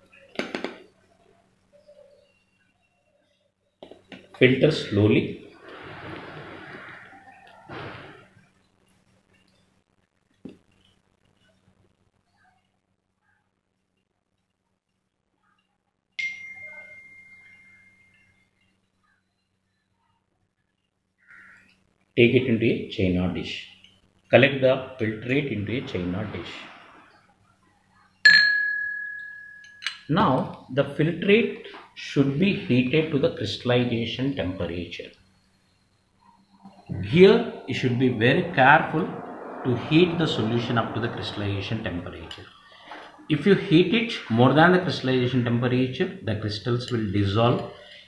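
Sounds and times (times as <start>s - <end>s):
glass ringing tone: 16.2s - 18.8s, 28.2s - 30.1s
rushing noise: 25.2s - 27.4s, 36.4s - 44.7s.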